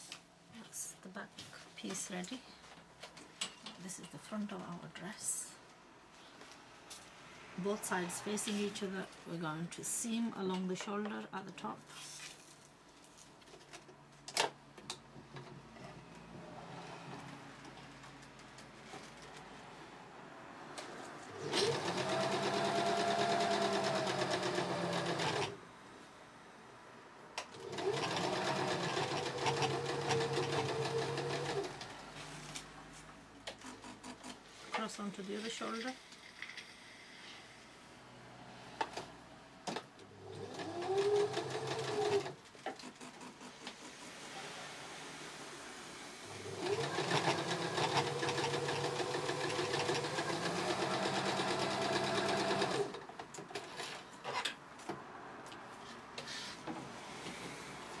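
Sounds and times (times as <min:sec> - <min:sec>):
sewing machine stitching: 0:21.3 - 0:25.6, 0:27.5 - 0:32.0, 0:40.2 - 0:44.2, 0:46.3 - 0:54.4.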